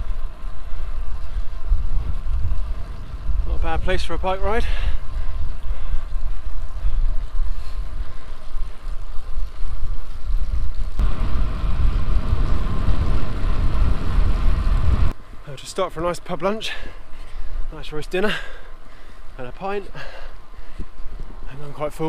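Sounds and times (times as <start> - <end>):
wind buffeting microphone: 0.0 - 15.5
bicycle tyre noise on tarmac: 0.0 - 22.0.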